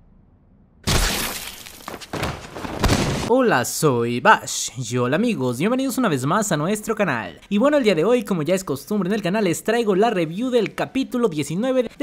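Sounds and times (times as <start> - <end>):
crash with glass shattering: 0.8 - 3.3.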